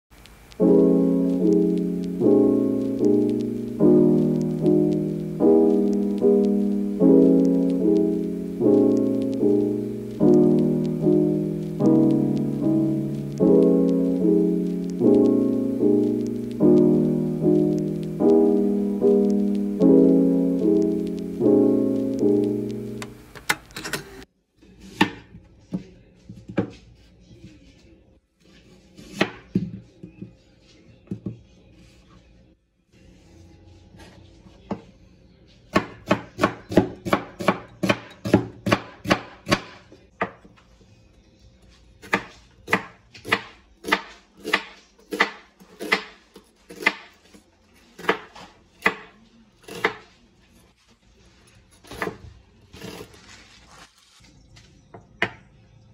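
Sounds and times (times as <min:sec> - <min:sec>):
soft piano chords: 0:00.5 - 0:23.4.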